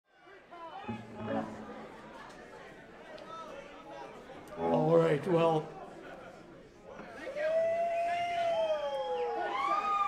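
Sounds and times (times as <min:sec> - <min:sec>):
audience whooping: 0:07.5 - 0:10.0.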